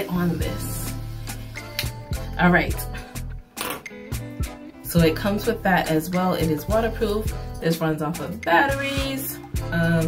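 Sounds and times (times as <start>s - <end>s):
background music with a beat: 0.3s - 10.0s.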